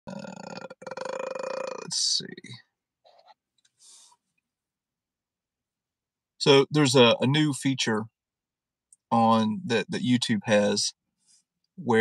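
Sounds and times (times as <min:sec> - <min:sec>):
man's low buzzy vocal drone: 0:00.1 - 0:02.0.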